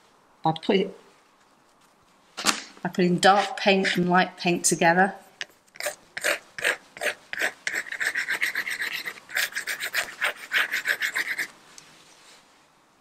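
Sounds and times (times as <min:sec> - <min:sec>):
paintbrush scraping on paper: 0:03.2 - 0:04.1, 0:05.4 - 0:11.5.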